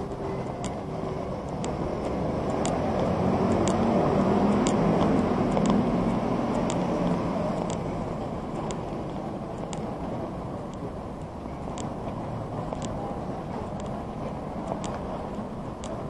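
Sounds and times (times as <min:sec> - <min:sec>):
turn signal ticking: 0:00.0 - 0:16.0
vehicle engine and road noise: 0:00.0 - 0:16.0.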